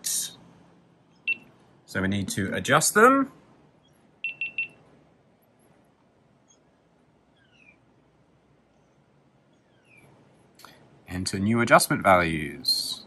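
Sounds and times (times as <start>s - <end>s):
high electronic beeps: 1.1s - 1.5s, 4.2s - 4.8s.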